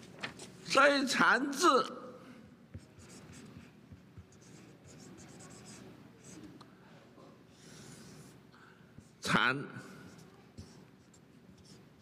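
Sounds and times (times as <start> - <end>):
marker scratching on paper: 2.7 - 6.6, 7.6 - 8.4, 9.0 - 12.0.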